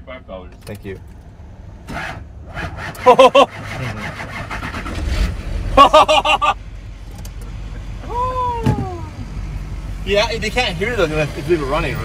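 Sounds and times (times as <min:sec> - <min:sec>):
truck engine idling: 0:01.0 - 0:12.0
men laughing loudly: 0:03.0 - 0:03.7, 0:05.8 - 0:06.6.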